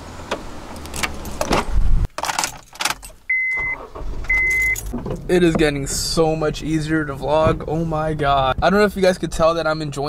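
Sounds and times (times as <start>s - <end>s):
car door clunk opening: 0.2s - 8.9s
keys jangling: 2.1s - 3.2s, 4.4s - 5.1s
car warning chime beep: 3.3s - 4.9s.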